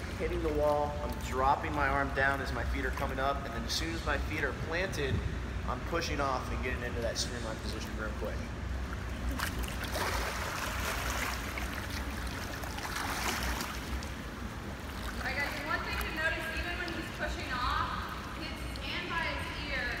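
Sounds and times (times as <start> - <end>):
swimmer splashing water: 0.0 - 5.0, 6.1 - 20.0.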